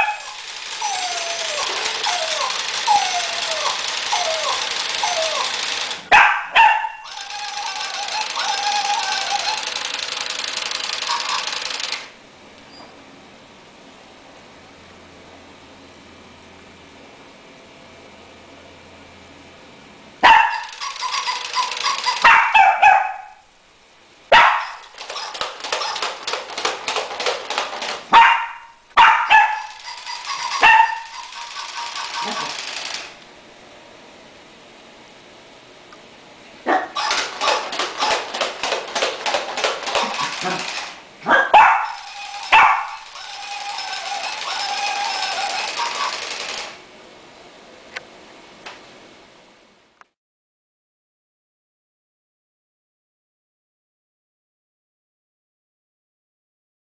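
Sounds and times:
dog barking: 0.0s - 0.4s, 6.1s - 7.1s, 20.2s - 20.8s, 21.6s - 23.4s, 24.3s - 26.0s, 28.1s - 29.8s, 30.5s - 31.2s, 36.6s - 37.6s, 40.0s - 43.0s
toy robot motors whirring: 0.0s - 6.1s, 7.0s - 12.2s, 20.5s - 22.4s, 24.7s - 28.1s, 29.3s - 33.2s, 37.0s - 41.0s, 41.8s - 46.8s
rapid clicking: 1.6s - 6.0s, 7.2s - 12.1s, 25.0s - 28.1s, 31.2s - 33.2s, 37.0s - 41.0s.

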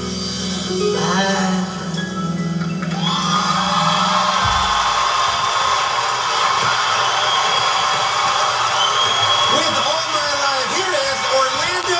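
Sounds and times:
audience cheering and applauding: 2.6s - 11.9s.

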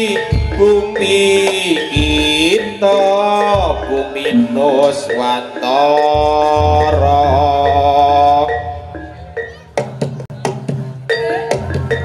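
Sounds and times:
sharp percussion strikes: 0.0s - 12.0s
long held melodic note: 6.6s - 9.0s
low drone: 6.6s - 9.2s.

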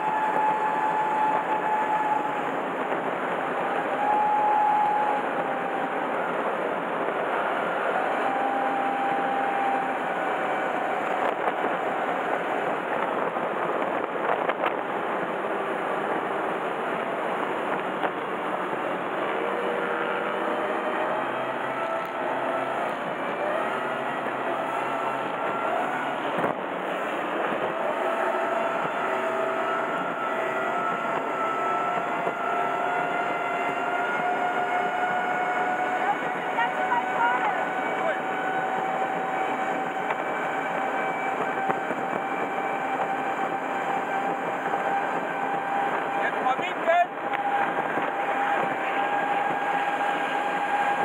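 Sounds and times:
powerboat engine running hard: 0.0s - 51.0s
rush of wind and water: 0.0s - 51.0s.

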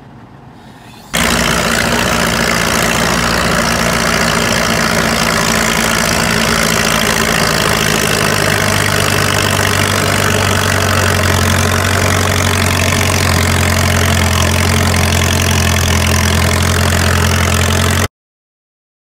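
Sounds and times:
bulldozer engine running: 0.0s - 18.1s.

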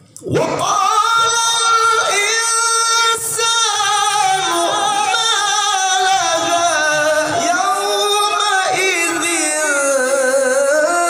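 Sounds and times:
man chanting through a microphone: 0.0s - 11.0s.

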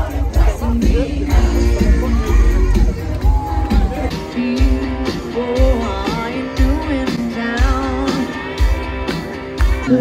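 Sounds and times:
guitar: 0.0s - 10.0s
live band over pa: 0.0s - 10.0s
woman singing: 3.8s - 8.6s, 9.8s - 10.0s.

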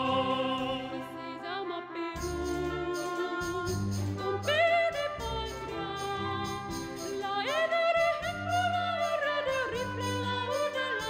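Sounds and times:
soprano singing with vibrato: 0.0s - 11.0s.

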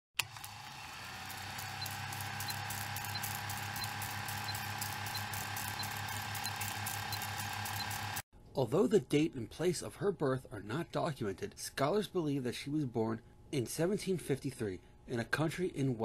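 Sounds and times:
projector motor hum: 0.2s - 8.2s.

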